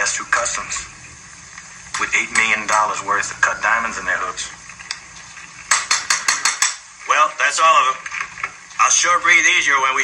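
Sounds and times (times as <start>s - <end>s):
hammer tapping horseshoe nails: 5.7s - 6.8s.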